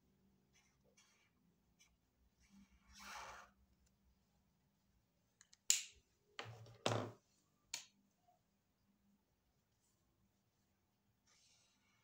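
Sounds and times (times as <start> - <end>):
marker scratching on paper: 0.5 - 3.6.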